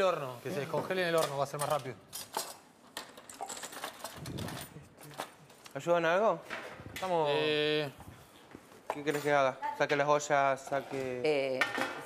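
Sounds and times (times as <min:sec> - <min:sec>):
utensils clinking in a drawer: 0:01.1 - 0:05.4.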